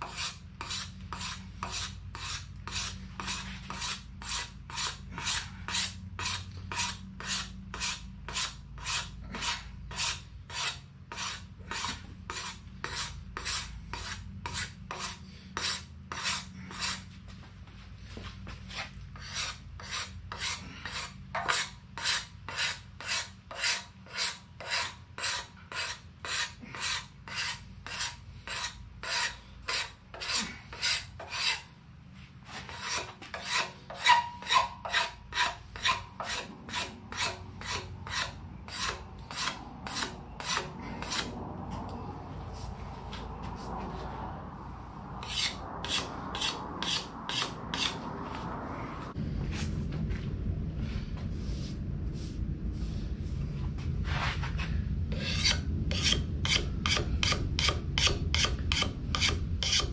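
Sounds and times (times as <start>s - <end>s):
wood rasp rasping strokes: 0.0s - 17.1s, 19.2s - 31.6s, 32.5s - 41.3s, 55.1s - 59.9s.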